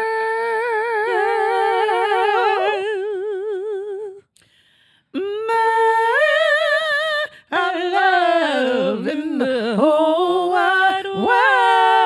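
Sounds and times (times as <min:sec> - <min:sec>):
women singing held notes: 0:07.5 - 0:12.0.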